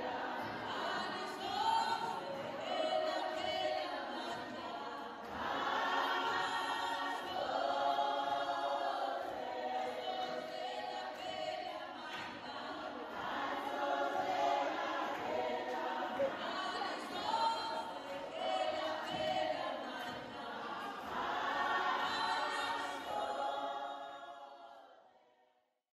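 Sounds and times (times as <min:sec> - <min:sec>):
women singing in chorus: 0:00.0 - 0:25.2.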